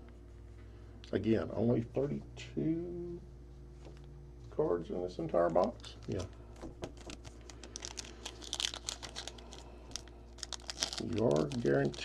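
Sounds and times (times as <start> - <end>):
foil wrapper crinkling: 5.4 - 12.0.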